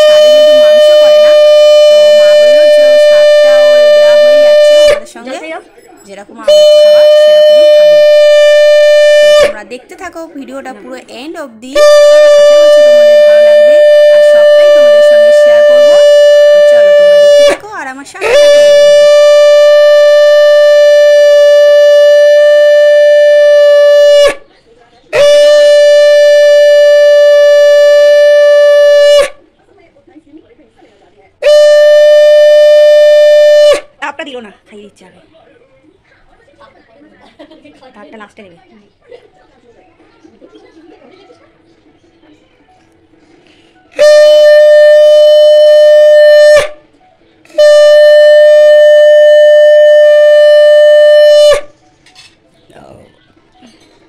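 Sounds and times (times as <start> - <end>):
conch shell blast: 0.0 - 5.4, 6.4 - 9.6, 11.7 - 17.6, 18.2 - 24.5, 25.1 - 29.4, 31.4 - 34.0, 43.9 - 46.9, 47.5 - 51.8.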